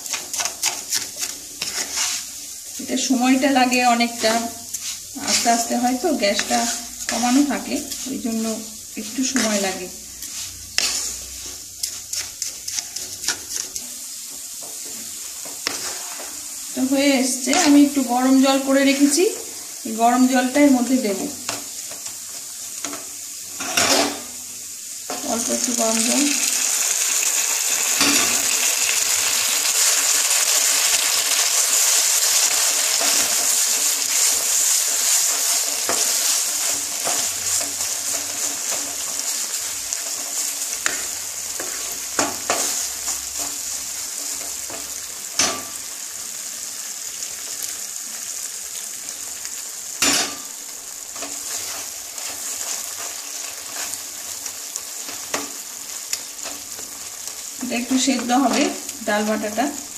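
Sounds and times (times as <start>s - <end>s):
wooden spatula stirring: 0.0s - 2.8s, 3.6s - 16.4s, 31.8s - 45.0s, 51.1s - 57.4s
food sizzling in a pan: 0.0s - 59.9s.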